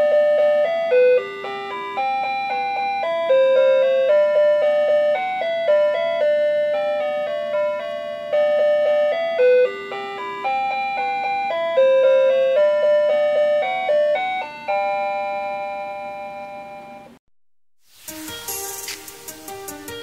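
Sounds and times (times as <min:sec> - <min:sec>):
tinny electronic chime melody: 0:00.0 - 0:17.2.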